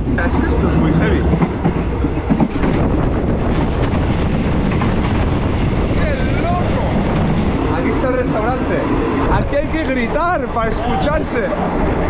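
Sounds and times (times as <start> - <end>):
train wheels rattling on track: 0.0 - 12.0.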